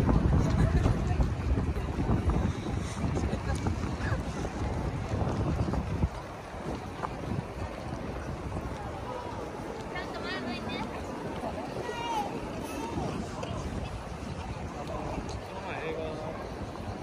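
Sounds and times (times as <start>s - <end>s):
hubbub of pedestrian street: 0.0s - 17.0s
wind buffeting microphone: 0.0s - 17.0s.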